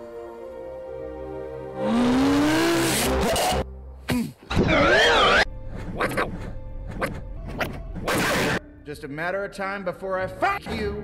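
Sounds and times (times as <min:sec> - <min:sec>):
soft film score music: 0:00.0 - 0:11.0.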